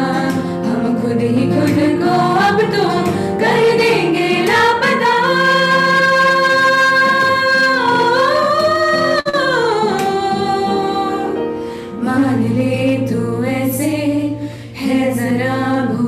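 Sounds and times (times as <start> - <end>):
acoustic guitar: 0.0 - 16.0
keyboard: 0.0 - 16.0
people singing a pop ballad: 0.0 - 16.0.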